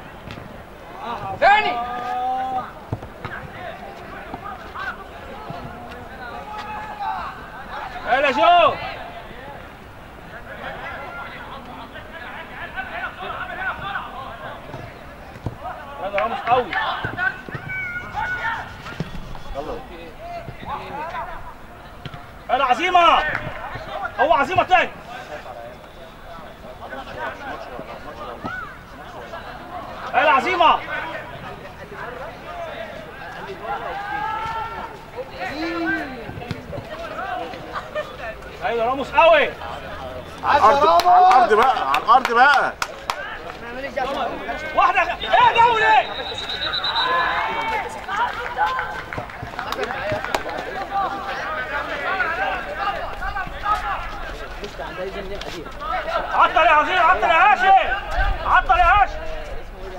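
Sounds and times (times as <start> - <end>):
people shouting: 1.0 - 3.8, 15.6 - 19.0, 33.6 - 36.3, 44.2 - 49.0, 55.8 - 59.5.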